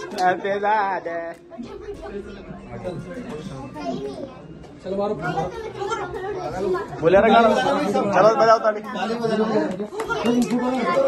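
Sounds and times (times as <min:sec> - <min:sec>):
adults and children talking: 0:00.0 - 0:11.0.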